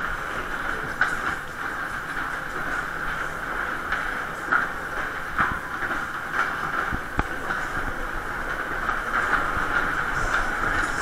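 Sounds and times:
ride car rolling on track: 0.0s - 11.0s.

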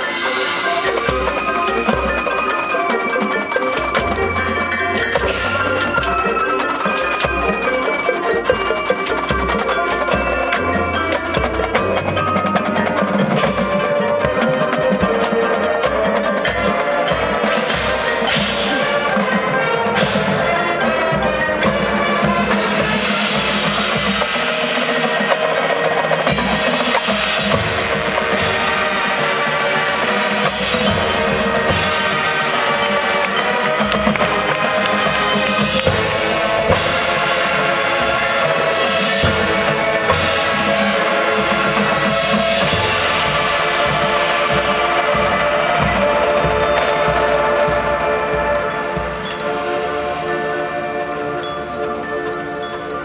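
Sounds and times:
marching band playing: 0.0s - 53.0s
ringing mallet percussion: 0.0s - 53.0s.

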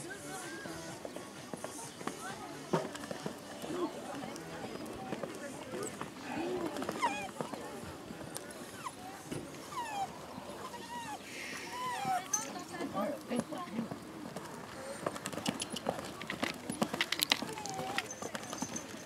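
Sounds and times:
people talking: 0.0s - 19.0s.

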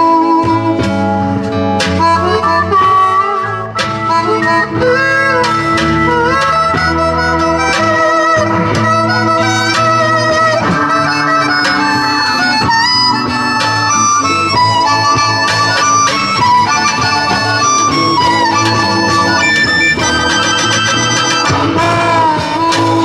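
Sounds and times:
bass line: 0.0s - 23.0s
blues harmonica solo: 0.0s - 23.0s.

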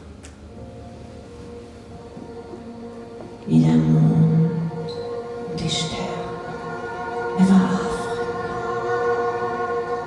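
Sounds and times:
live band sustained chord: 0.0s - 10.0s.

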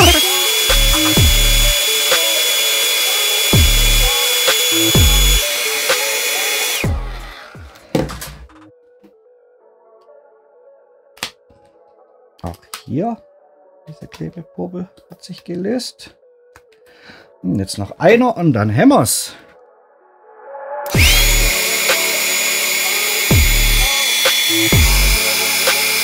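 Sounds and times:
hair dryer running: 0.0s - 7.8s, 20.9s - 26.0s.

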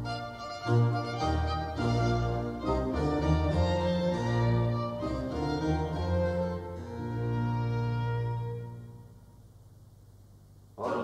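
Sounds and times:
strings and harpsichord ensemble: 0.0s - 9.2s.

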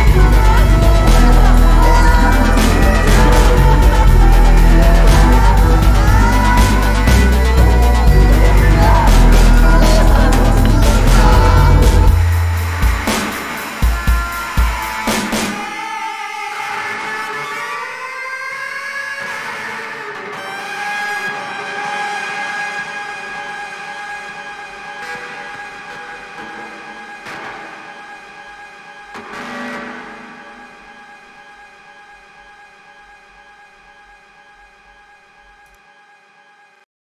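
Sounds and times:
held chord of steady tones: 0.0s - 14.8s.

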